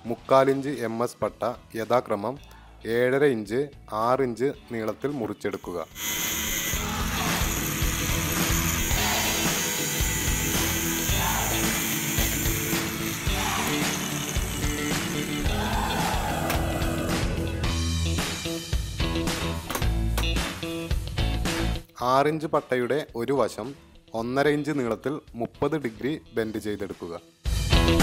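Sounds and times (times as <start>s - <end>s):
background music: 0.0s - 28.0s
angle grinder cutting steel: 5.5s - 17.0s.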